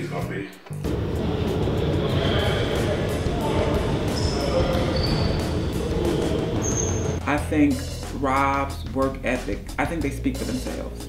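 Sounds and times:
players' voices echoing: 0.0 - 11.0
basketballs bouncing: 0.8 - 7.2
sneakers squeaking on court: 1.3 - 7.2.

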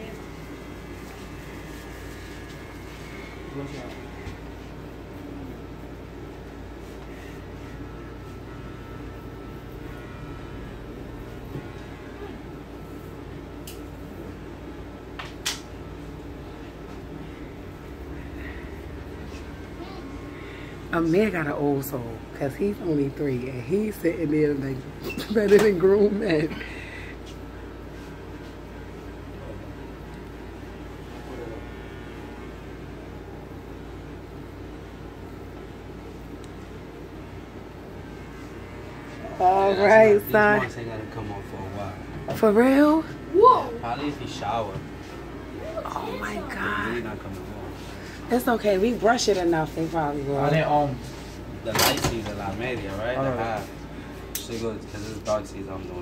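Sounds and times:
electric hair clippers buzzing: 0.0 - 28.2, 30.0 - 33.4, 37.6 - 45.6, 46.2 - 50.9.

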